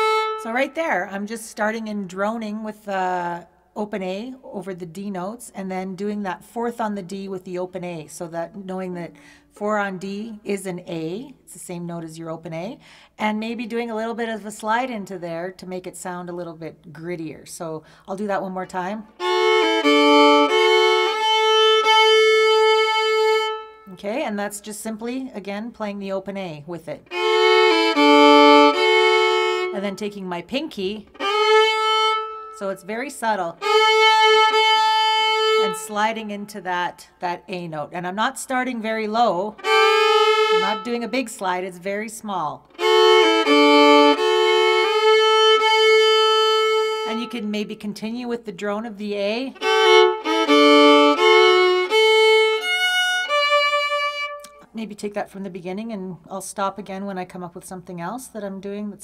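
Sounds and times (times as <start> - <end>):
fiddle playing a slow waltz: 0.0 - 0.7, 19.2 - 23.9, 27.0 - 30.1, 31.0 - 32.9, 33.5 - 36.1, 39.6 - 41.2, 42.7 - 47.5, 49.5 - 54.6.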